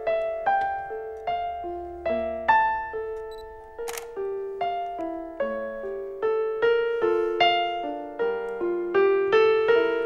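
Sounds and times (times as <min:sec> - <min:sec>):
slow piano notes and chords: 0:00.0 - 0:10.0
camera shutter click: 0:03.8 - 0:04.2.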